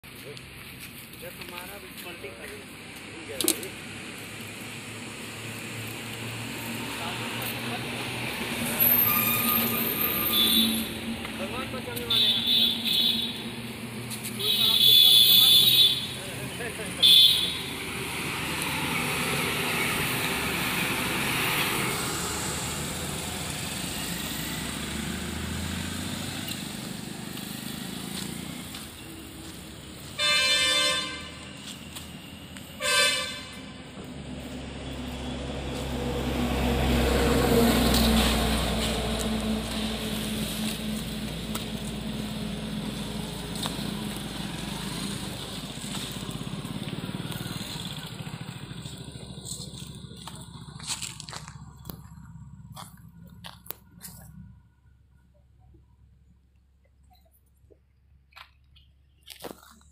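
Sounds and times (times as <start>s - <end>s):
vehicle passing rumble: 0.0s - 12.1s, 16.0s - 56.6s
roadside traffic noise: 0.0s - 59.9s
vehicle horn blasts: 8.9s - 11.0s, 12.1s - 13.4s, 14.4s - 16.2s, 17.0s - 17.7s, 30.1s - 31.4s, 32.8s - 33.7s.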